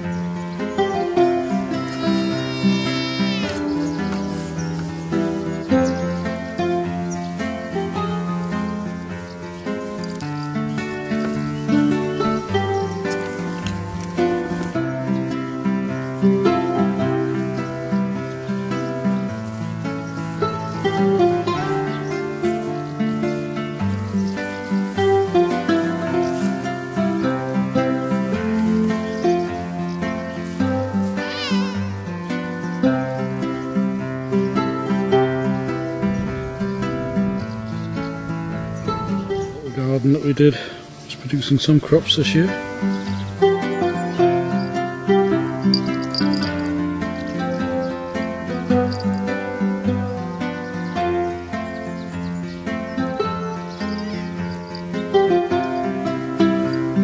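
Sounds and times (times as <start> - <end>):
plucked string music: 0.0 - 57.0
cat meowing: 1.9 - 3.6, 31.2 - 32.1.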